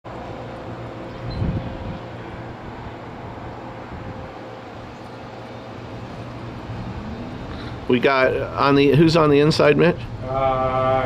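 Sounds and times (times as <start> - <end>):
low outdoor rumble: 0.1 - 11.0.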